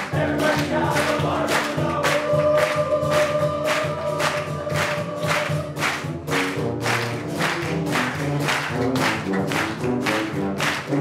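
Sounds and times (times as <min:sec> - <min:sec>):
young men singing together: 0:00.0 - 0:05.8
band playing a song: 0:00.0 - 0:11.0.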